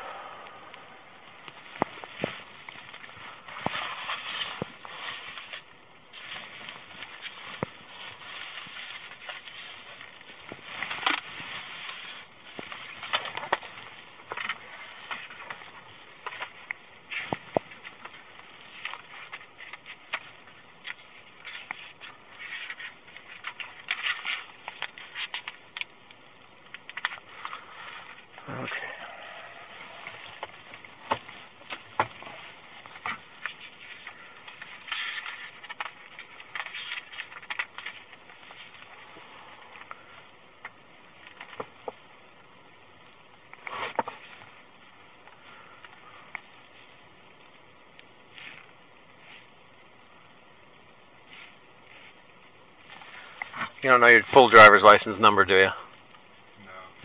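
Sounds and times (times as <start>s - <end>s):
paper and clothing rustling: 1.4s - 42.1s, 43.4s - 50.1s, 50.7s - 55.8s.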